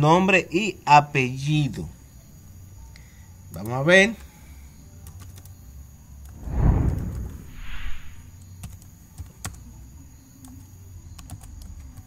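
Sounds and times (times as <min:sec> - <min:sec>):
computer keyboard typing: 0:05.0 - 0:05.5, 0:11.2 - 0:12.0.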